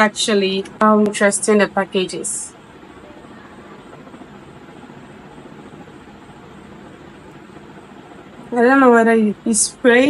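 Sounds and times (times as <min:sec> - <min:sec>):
low background hum and hiss: 0:00.0 - 0:10.0.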